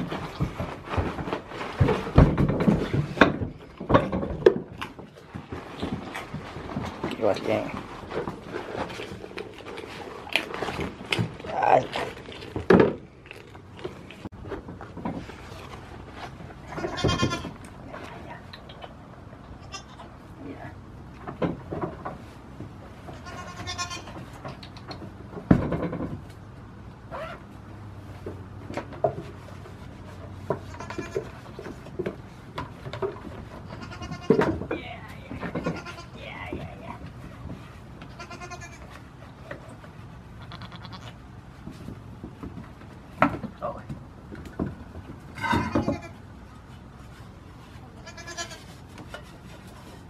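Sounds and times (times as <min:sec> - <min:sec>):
goat bleating: 0:16.7 - 0:17.6, 0:19.6 - 0:20.1, 0:23.1 - 0:24.2, 0:30.6 - 0:31.4, 0:33.7 - 0:34.4, 0:35.5 - 0:36.2, 0:38.0 - 0:39.0, 0:40.3 - 0:41.3, 0:45.4 - 0:46.2, 0:47.9 - 0:48.7.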